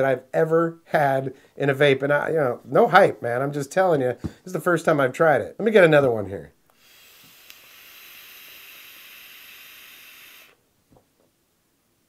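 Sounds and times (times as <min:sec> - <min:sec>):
vape coil hiss: 0:06.7 - 0:10.6.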